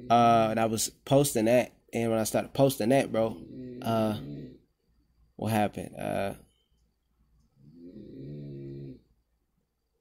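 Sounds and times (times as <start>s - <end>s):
man's drawn-out hesitation sound: 0.0s - 4.5s.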